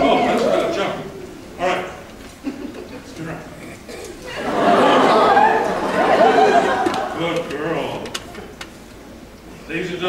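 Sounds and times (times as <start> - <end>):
audience chatter and laughter: 0.0 - 8.6.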